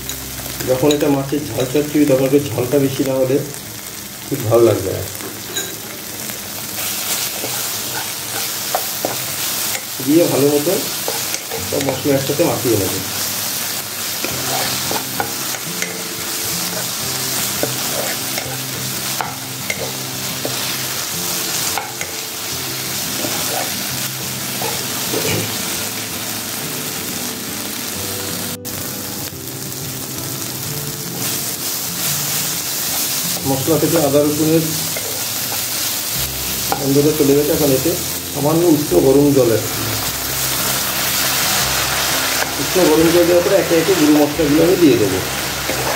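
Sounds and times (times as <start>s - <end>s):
food sizzling in oil: 0.0s - 45.9s
soft background music: 0.0s - 45.9s
spoon scraping a wok: 6.8s - 10.0s, 10.9s - 12.2s, 14.0s - 22.3s, 23.2s - 23.8s, 24.6s - 25.5s, 34.9s - 35.9s, 45.3s - 45.9s.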